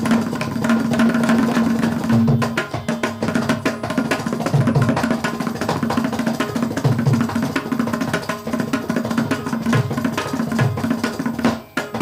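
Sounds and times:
hand drums playing sharp strokes: 0.0s - 12.0s.

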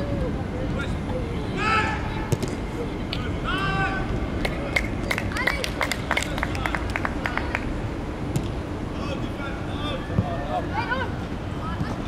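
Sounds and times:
players shouting: 1.5s - 2.3s, 3.2s - 4.2s.

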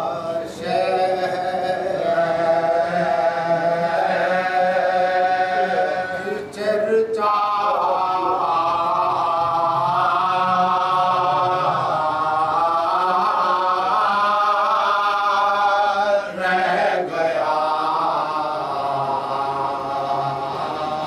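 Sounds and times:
man chanting devotional poem: 0.0s - 21.0s.

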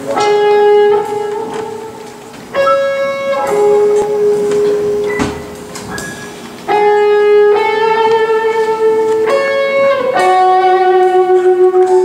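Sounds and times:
held guitar note: 0.2s - 12.0s.

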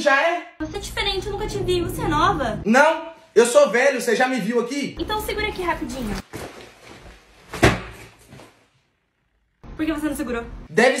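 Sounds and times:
backpack thud on floor: 6.3s - 8.5s.

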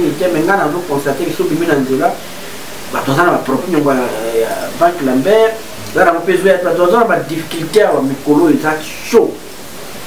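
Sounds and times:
man speaking: 0.0s - 2.3s, 2.9s - 9.5s
steady background hiss: 0.0s - 10.0s.

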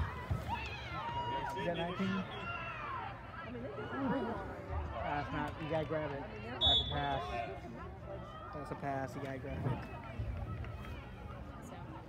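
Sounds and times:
chatter of spectators: 0.0s - 12.0s.

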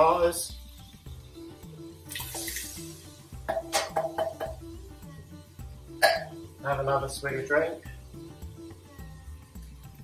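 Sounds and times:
background music with beat: 0.0s - 10.0s
tomatoes pouring from can: 2.1s - 3.1s
tin knocking on pot: 3.5s - 4.7s.

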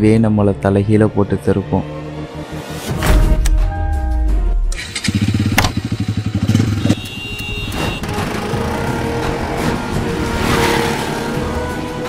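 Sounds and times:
background music: 0.0s - 12.0s
motorcycle engine running: 4.7s - 11.6s.

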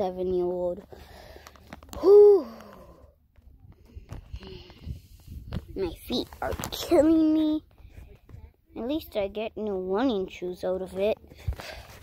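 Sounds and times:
boy sighing oooh: 1.9s - 3.0s.

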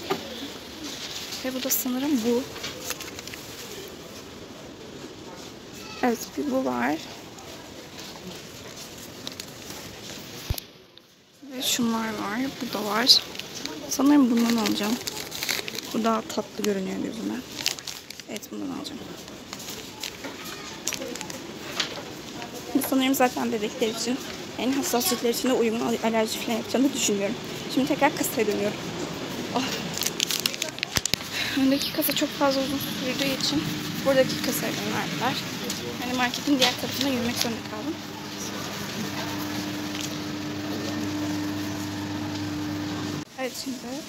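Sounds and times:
faint background noise: 0.0s - 44.0s
low shop background noise: 0.0s - 44.0s
plastic packet crinkling: 1.0s - 3.9s, 8.5s - 10.6s, 12.1s - 22.8s, 23.6s - 42.9s
woman speaking: 1.4s - 2.5s, 6.0s - 7.1s, 11.4s - 15.0s, 15.9s - 17.5s, 18.3s - 19.1s, 22.7s - 28.8s, 29.4s - 40.0s, 43.3s - 44.0s
steady mechanical hum: 21.3s - 44.0s
low drone: 31.2s - 43.3s.

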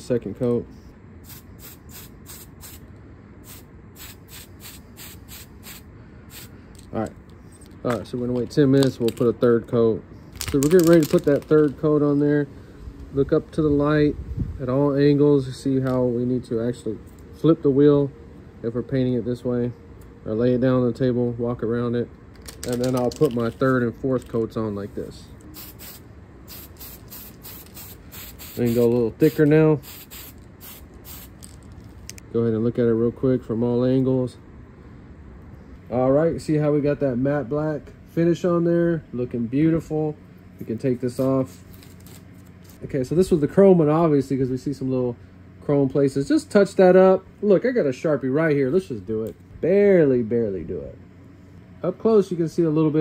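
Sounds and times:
spray paint can hissing: 1.2s - 2.8s, 3.4s - 6.5s, 25.5s - 31.6s.

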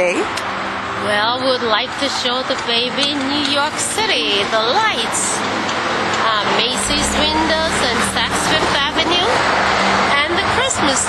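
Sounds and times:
woman speaking: 1.0s - 5.4s, 6.2s - 9.5s, 10.1s - 11.0s
rushing noise: 6.7s - 11.0s.

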